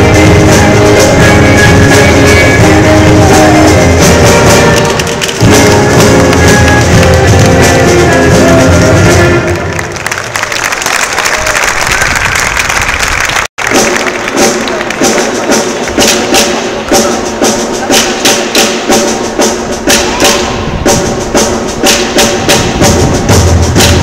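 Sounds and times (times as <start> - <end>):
lively dance music with drums: 0.0 - 9.8, 13.6 - 24.0.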